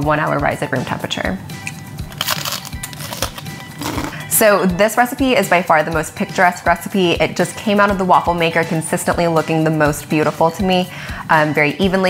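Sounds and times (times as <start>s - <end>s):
background music: 0.0s - 12.0s
crunching while chewing: 2.1s - 4.2s.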